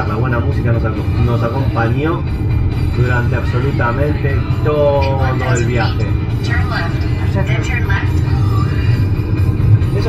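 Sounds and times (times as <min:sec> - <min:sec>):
road and engine rumble: 0:00.0 - 0:10.0
rock music with vocals on radio: 0:00.0 - 0:10.0.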